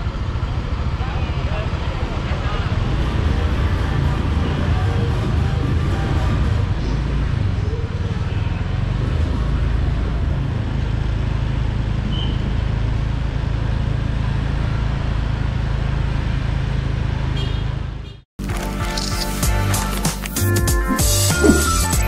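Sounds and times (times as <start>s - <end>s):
cars passing in street: 0.0s - 19.3s, 20.8s - 22.0s.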